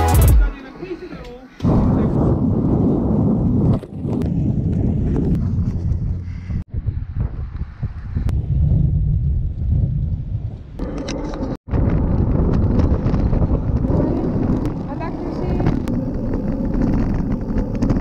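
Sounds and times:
wind buffeting microphone: 1.6s - 18.0s.

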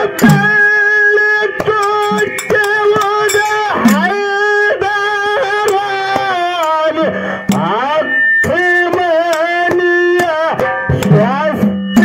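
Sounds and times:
hand drum strokes: 0.0s - 0.9s, 1.6s - 4.2s, 5.6s - 12.0s
man singing into a microphone: 0.0s - 12.0s.

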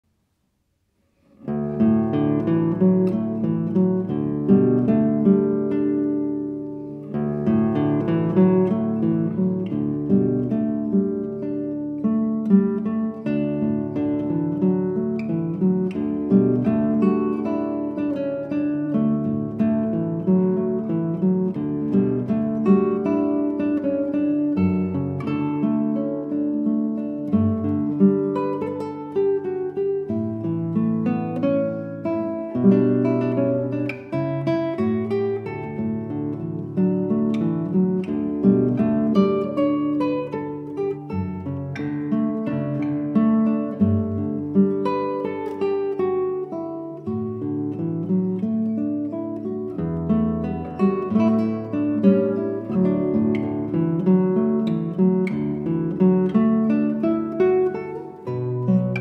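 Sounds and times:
acoustic guitar plucked melody: 0.8s - 59.0s.

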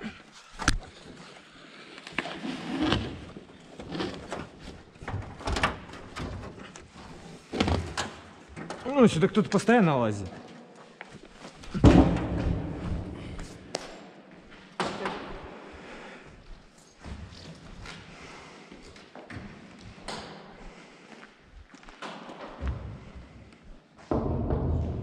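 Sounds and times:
heavy thud echoing in hall: 11.8s - 13.7s, 24.0s - 25.0s.

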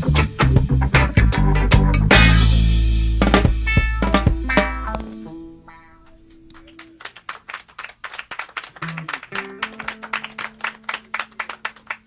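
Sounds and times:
held instrument notes: 3.2s - 6.9s
audience clapping: 6.0s - 12.0s.

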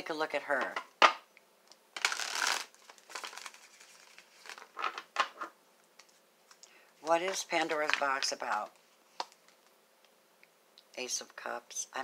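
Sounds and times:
cards rustling: 2.0s - 5.1s.

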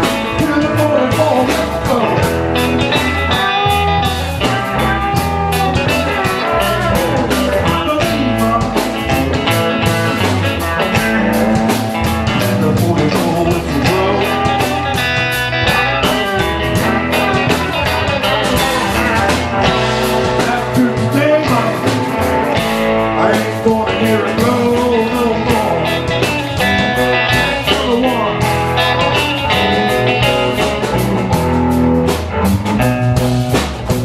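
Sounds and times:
electric blues-rock band: 0.0s - 34.0s
electric guitar bending notes: 0.0s - 34.0s.

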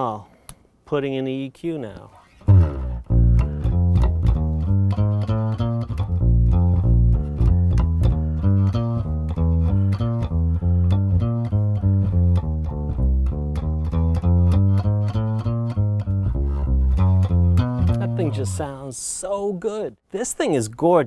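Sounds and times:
electric bass guitar groove: 2.2s - 18.9s.

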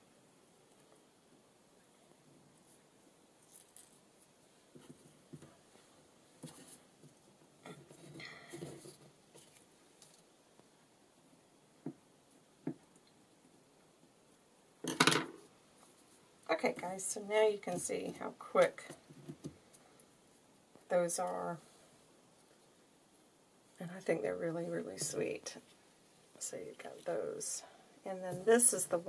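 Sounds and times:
faint paper rustles: 2.3s - 10.7s.

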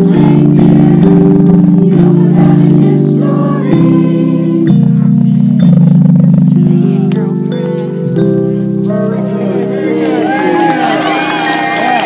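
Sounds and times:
carolers singing: 0.0s - 6.2s.

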